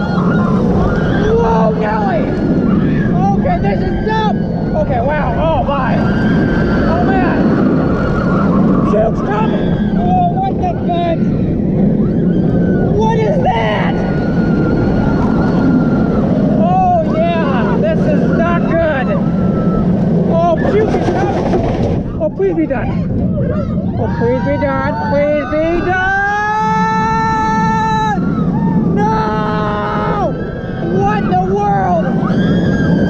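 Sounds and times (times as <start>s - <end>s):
riders screaming: 0.0s - 33.0s
roller coaster roaring on track: 0.0s - 33.0s.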